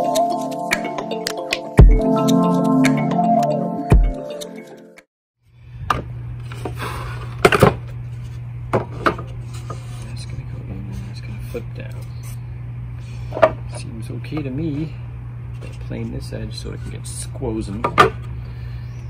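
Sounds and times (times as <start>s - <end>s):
steady low hum: 5.5s - 19.0s.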